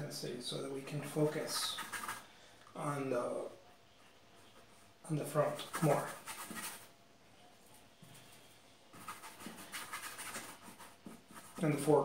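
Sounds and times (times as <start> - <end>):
brush scrubbing on canvas: 1.0 - 2.3, 5.4 - 6.9, 8.9 - 11.9.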